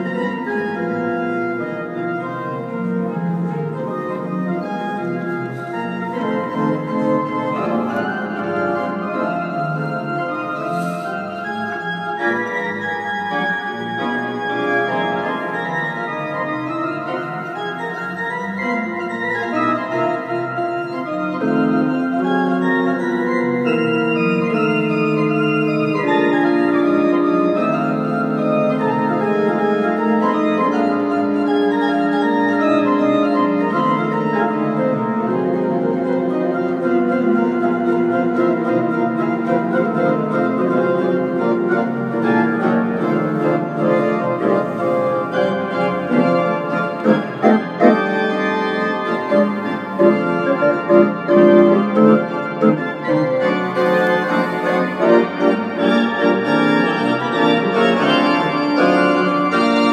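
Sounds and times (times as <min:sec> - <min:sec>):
pipe organ playing blues chords: 0:00.0 - 0:59.9.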